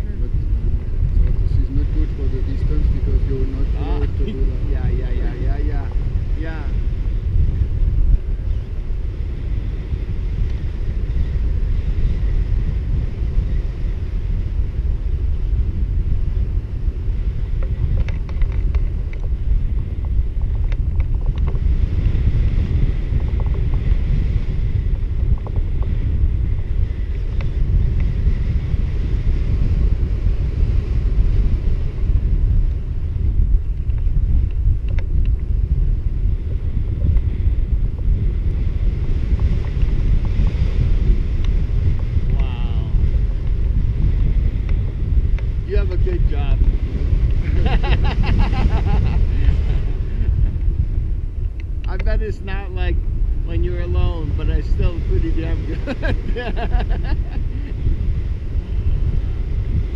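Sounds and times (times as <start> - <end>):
wind rumble on microphone: 0.0 - 59.9.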